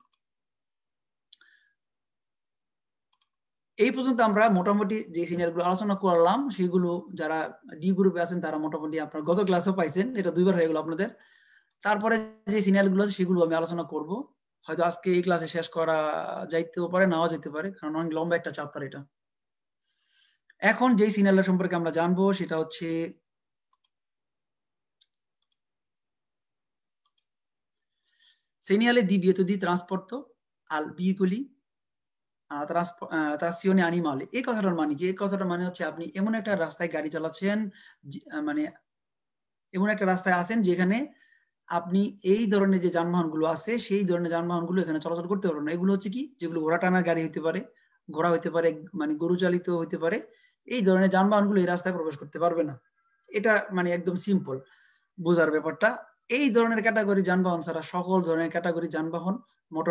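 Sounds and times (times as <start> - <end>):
man speaking: 55.2 - 59.9.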